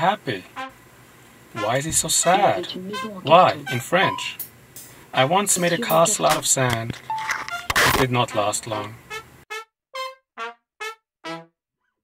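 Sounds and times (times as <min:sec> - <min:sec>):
brass instrument playing short notes: 0:01.6 - 0:04.4.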